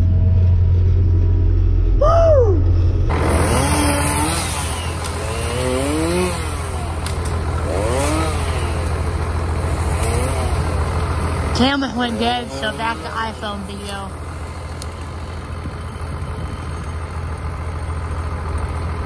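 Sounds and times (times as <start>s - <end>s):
heavy machine engine droning: 0.0s - 19.0s
chainsaw revving: 3.1s - 19.0s.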